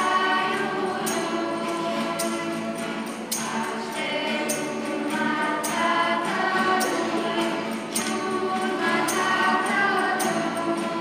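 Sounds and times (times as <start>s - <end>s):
acoustic guitars: 0.0s - 11.0s
mixed vocal group singing carol: 0.0s - 11.0s.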